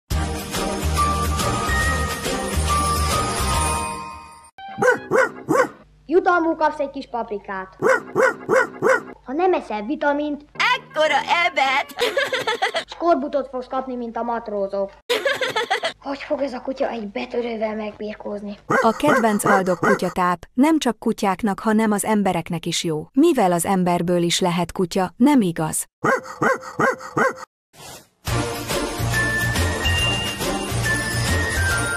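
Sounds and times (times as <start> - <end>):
dog barking: 4.8 - 5.8, 7.8 - 9.2, 18.7 - 20.2, 26.0 - 27.5
music jingle: 28.8 - 31.9.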